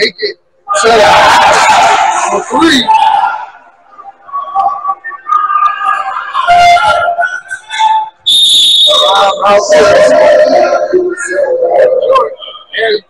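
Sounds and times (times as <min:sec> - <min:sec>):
referee's whistle blast: 0:08.2 - 0:09.5.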